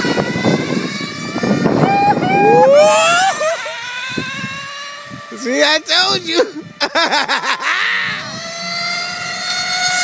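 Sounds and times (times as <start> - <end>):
rc car motors revving: 0.0 - 6.8, 7.6 - 10.0.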